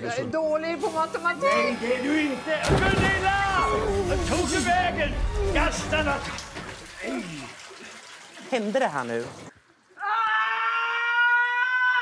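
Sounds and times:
woman screaming high-pitched: 10.0 - 12.0.

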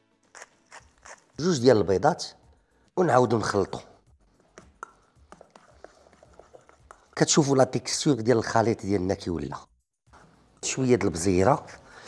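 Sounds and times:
utensil stirring in steel bowl: 0.3 - 1.8, 3.5 - 8.0.

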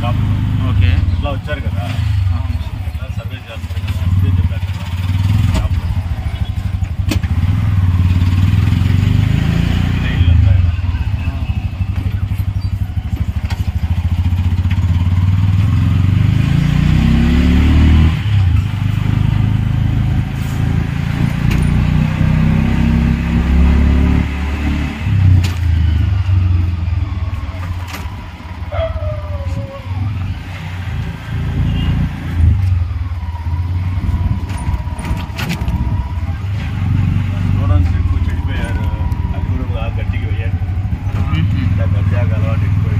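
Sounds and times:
small engine rumbling and accelerating: 0.0 - 42.9.

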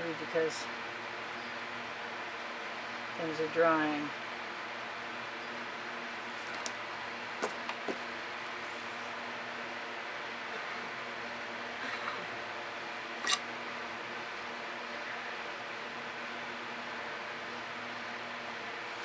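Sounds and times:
room noise hum and hiss: 0.0 - 19.0.

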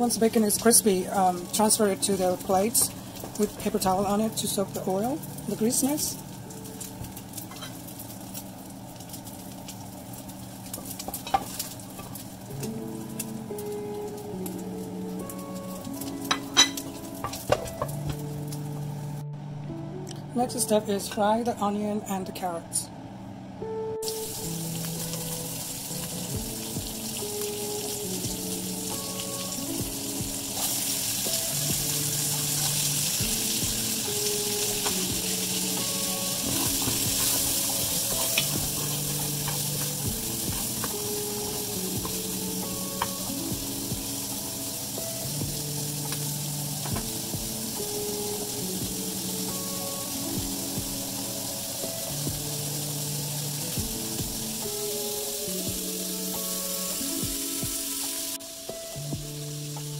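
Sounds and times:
vegetables sizzling in a pot: 0.0 - 19.2, 24.0 - 59.9.

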